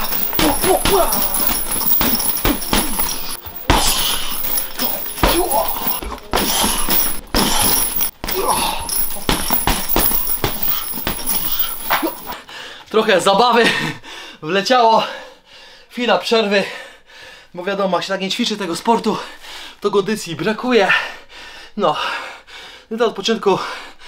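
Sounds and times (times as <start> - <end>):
gloved punches on heavy bag: 0.0 - 12.3
boxer grunting and breathing: 0.0 - 12.7.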